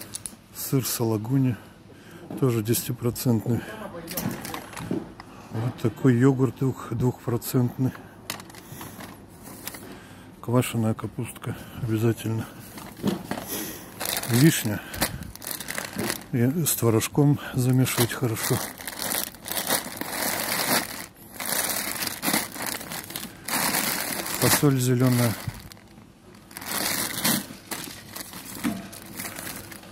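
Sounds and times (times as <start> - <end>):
store background noise: 0.0 - 29.9
packaging rustling: 12.6 - 16.9, 17.6 - 29.9.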